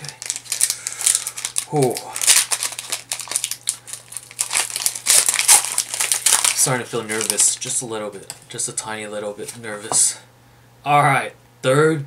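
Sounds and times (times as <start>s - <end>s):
foil wrapper crinkling: 0.0s - 8.0s.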